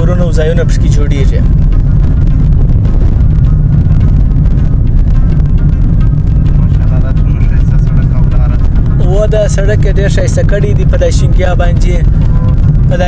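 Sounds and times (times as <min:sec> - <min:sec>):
car cabin rumble: 0:00.0 - 0:13.0.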